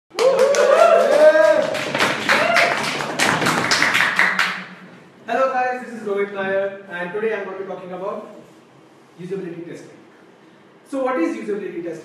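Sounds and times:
audience clapping: 0.1 - 4.9.

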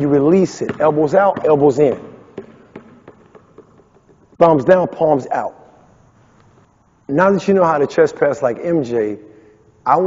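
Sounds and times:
basketball bouncing on wooden floor: 0.0 - 5.2.

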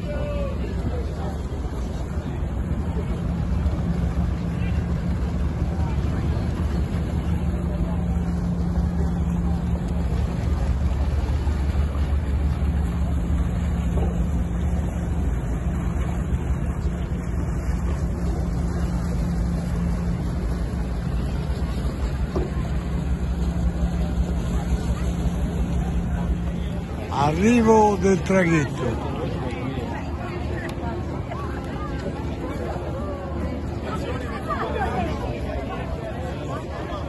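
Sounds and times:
ship diesel engines droning: 0.0 - 37.0
water churning along hull: 0.0 - 37.0.

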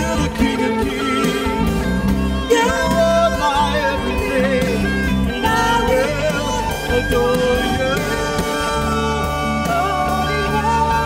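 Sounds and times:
bass notes: 0.0 - 11.0
keyboard and guitars: 0.0 - 11.0
person singing: 0.0 - 11.0.

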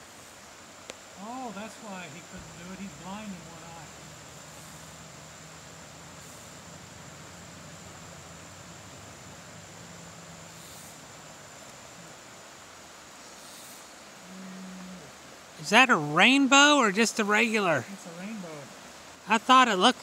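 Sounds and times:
outdoor background hiss: 0.0 - 20.0
faint low hum: 1.2 - 15.5.

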